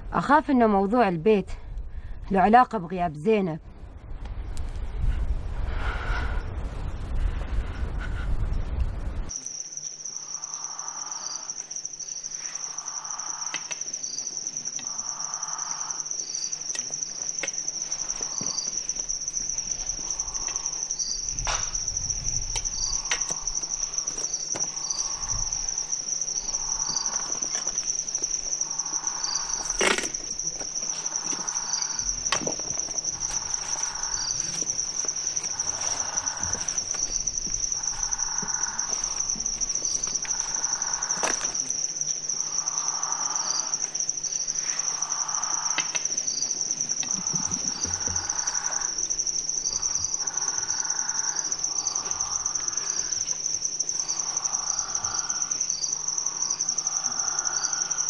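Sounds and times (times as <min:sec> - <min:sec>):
crickets trilling: 0:00.0 - 0:58.0
lower insect call: 0:00.0 - 0:58.0.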